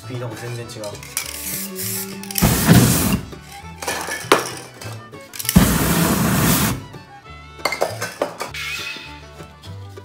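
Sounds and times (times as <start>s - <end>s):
background music: 0.0s - 10.0s
aerosol spray hissing: 2.4s - 3.3s, 5.6s - 7.0s.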